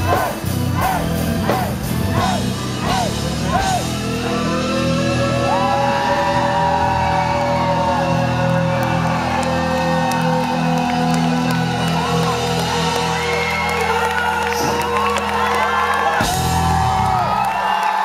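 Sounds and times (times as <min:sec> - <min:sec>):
symphonic metal band playing: 0:00.0 - 0:17.4.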